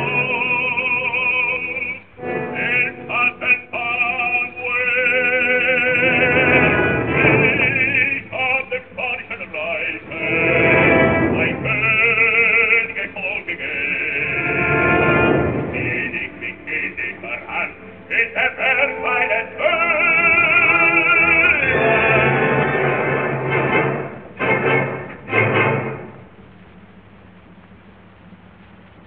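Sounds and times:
opera singing with orchestra: 0:00.0 - 0:26.2.

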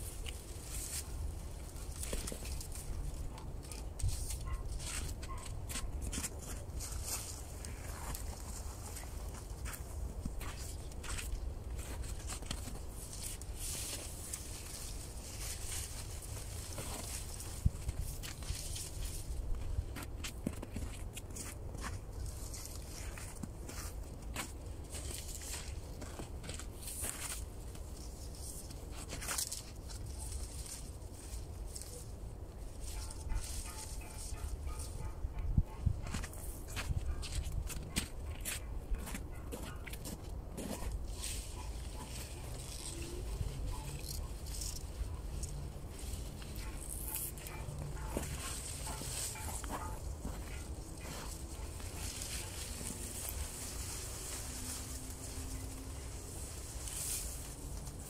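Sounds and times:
footsteps crunching on snow: 0:00.0 - 0:32.1, 0:32.7 - 0:58.0
dry reeds rustling and rattling: 0:00.0 - 0:58.0
wind rumble on microphone: 0:14.3 - 0:21.0, 0:34.2 - 0:39.0.

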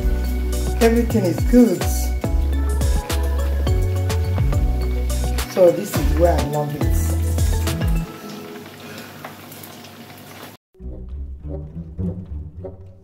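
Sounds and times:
music with plucked bass line: 0:00.0 - 0:08.0, 0:10.8 - 0:13.0
chicken sizzling in oil: 0:00.0 - 0:10.6.

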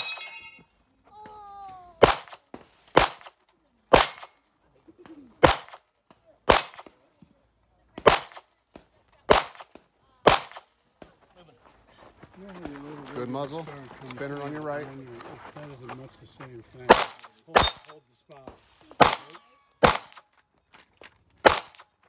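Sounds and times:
rifle shots with echo: 0:02.0 - 0:04.4, 0:05.4 - 0:05.8, 0:08.0 - 0:08.4, 0:09.3 - 0:10.7, 0:16.9 - 0:17.9, 0:19.0 - 0:20.2, 0:21.4 - 0:21.8.

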